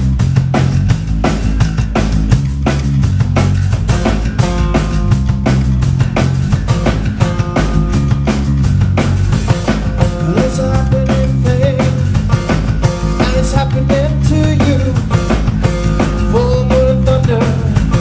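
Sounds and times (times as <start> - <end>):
acoustic guitar: 0.0 - 18.0
bass guitar: 0.0 - 18.0
drum kit beat: 0.0 - 18.0
held pitched notes: 0.0 - 18.0.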